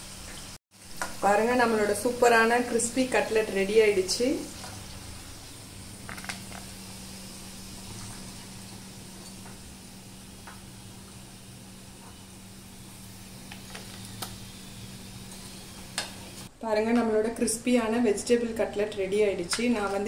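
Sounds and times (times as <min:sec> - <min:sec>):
oil sizzling in a frying pan: 0:00.0 - 0:16.5
small crackles: 0:05.9 - 0:06.8, 0:13.4 - 0:16.5.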